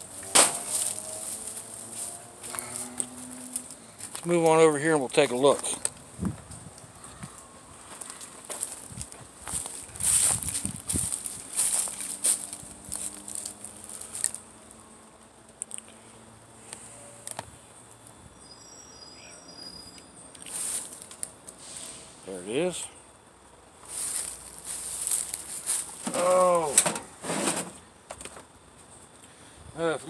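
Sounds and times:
scuffing and rustling: 0:00.5 - 0:04.6, 0:07.2 - 0:14.4, 0:20.5 - 0:21.2, 0:23.8 - 0:26.3.

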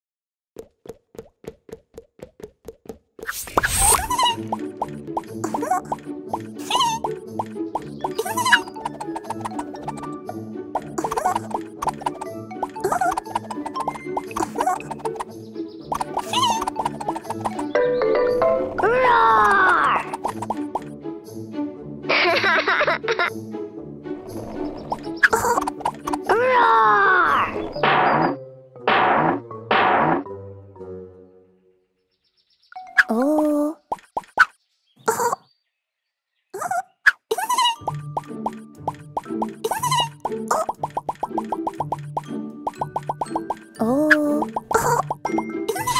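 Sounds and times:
light cartoon music: 0:03.2 - 0:32.0, 0:32.8 - 0:34.5, 0:36.6 - 0:45.9
squeaky cartoon sound: 0:03.7 - 0:04.6, 0:06.6 - 0:07.2, 0:08.1 - 0:10.1, 0:10.8 - 0:15.2, 0:16.0 - 0:17.7, 0:24.5 - 0:26.7, 0:32.8 - 0:34.5, 0:36.6 - 0:38.0, 0:39.6 - 0:40.7, 0:43.7 - 0:45.9
squeaky cartoon voice: 0:03.9 - 0:04.5, 0:06.6 - 0:07.2, 0:08.2 - 0:08.8, 0:12.8 - 0:13.3, 0:16.2 - 0:16.8, 0:33.0 - 0:33.8, 0:36.6 - 0:37.9, 0:39.6 - 0:40.6, 0:43.8 - 0:45.1, 0:45.7 - 0:45.9
rising bloop sound effects: 0:10.8 - 0:15.3, 0:15.9 - 0:17.7, 0:40.5 - 0:42.0.

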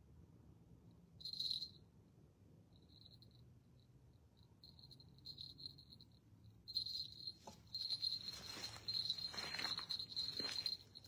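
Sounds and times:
faint low hum: 0:00.0 - 0:11.0
cricket trilling: 0:02.7 - 0:11.0.

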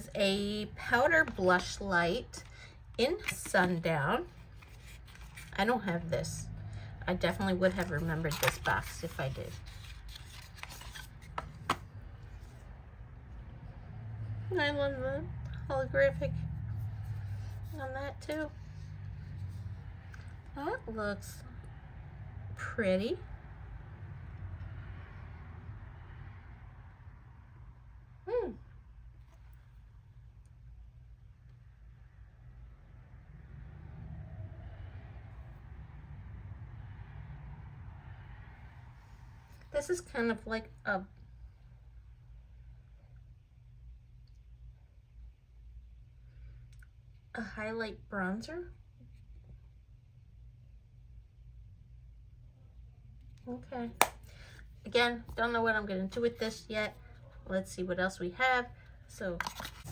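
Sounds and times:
faint low rumble: 0:00.0 - 0:59.9
card rubbing and sliding: 0:04.3 - 0:05.6, 0:07.7 - 0:12.6.

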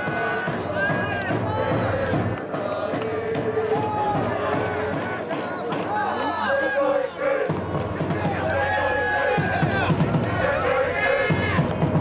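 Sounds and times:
many voices shouting: 0:00.0 - 0:12.0.

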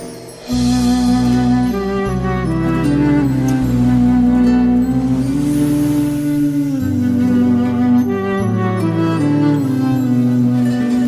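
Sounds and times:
low accompaniment: 0:00.0 - 0:11.0
clarinet holding long note: 0:00.5 - 0:11.0.

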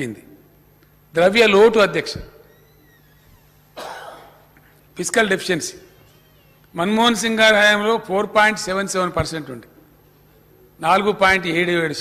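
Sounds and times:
man coughing: 0:03.8 - 0:04.5.

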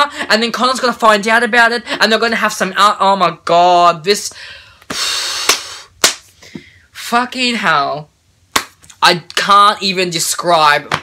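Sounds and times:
man blowing out breath: 0:04.4 - 0:06.8.

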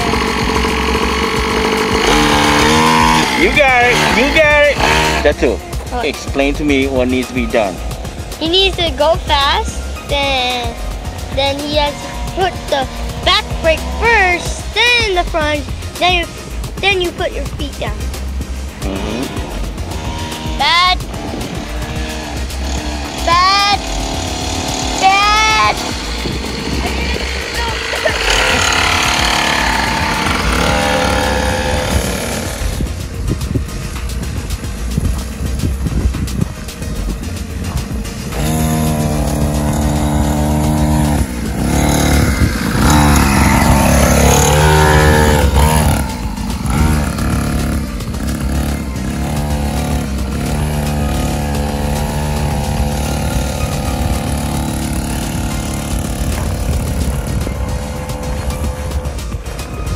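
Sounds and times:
background music: 0:00.0 - 0:59.9
dirt bike engine revving: 0:00.0 - 0:59.9.

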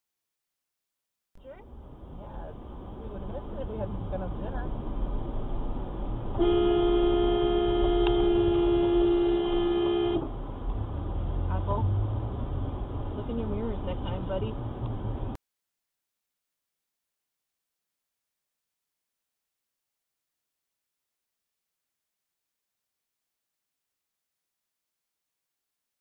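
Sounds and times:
road and engine rumble: 0:01.4 - 0:15.4
car horn blast: 0:06.4 - 0:10.3.

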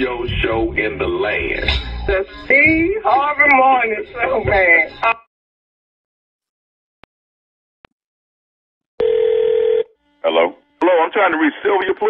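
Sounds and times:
telephone ringback tone: 0:09.0 - 0:10.0.

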